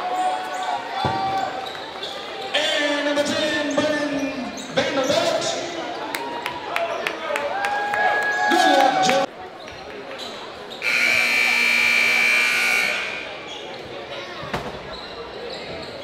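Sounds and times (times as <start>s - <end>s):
scoreboard buzzer tone: 10.8s - 13.2s.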